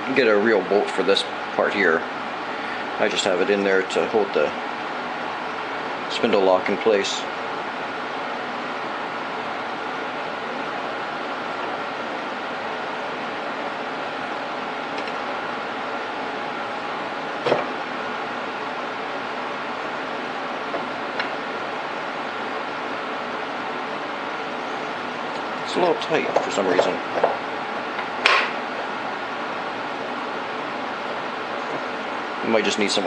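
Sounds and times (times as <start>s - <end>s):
machine hum and hiss: 0.0s - 33.0s.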